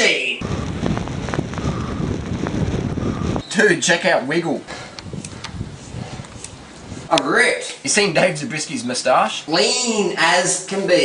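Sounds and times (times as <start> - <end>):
wind buffeting microphone: 0.4 - 3.5, 4.4 - 7.1.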